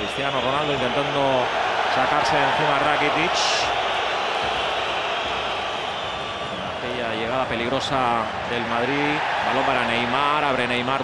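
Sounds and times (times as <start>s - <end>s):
stadium crowd voices: 0.0s - 11.0s.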